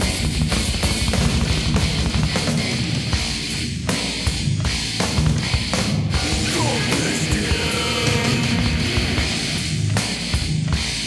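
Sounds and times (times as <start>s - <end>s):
distorted electric guitars: 0.0s - 11.0s
driving drum kit: 0.0s - 11.0s.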